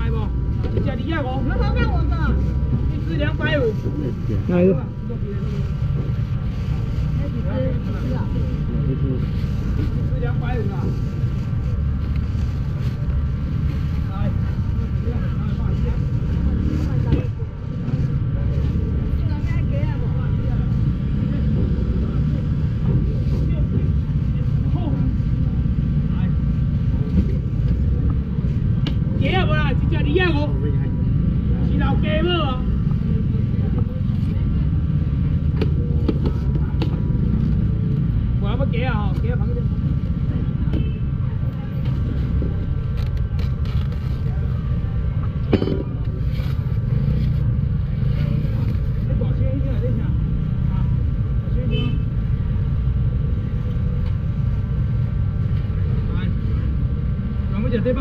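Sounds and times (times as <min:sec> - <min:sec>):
crowd voices: 0:39.1 - 0:51.6.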